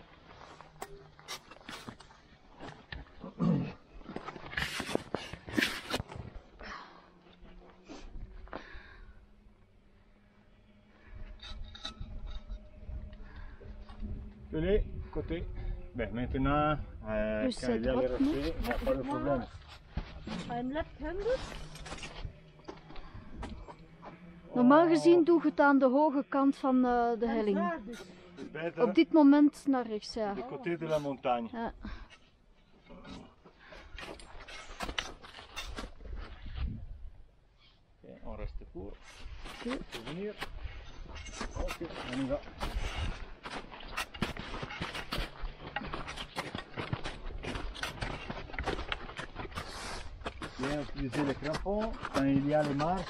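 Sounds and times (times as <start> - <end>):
climbing gear clicks and scrapes: 4.1 - 6.4, 11.3 - 13.2, 20.2 - 23.8, 32.1 - 36.7, 39.0 - 53.0
wind rumble on microphone: 36.0 - 37.3
crampon footsteps crunching on snow: 41.2 - 53.0.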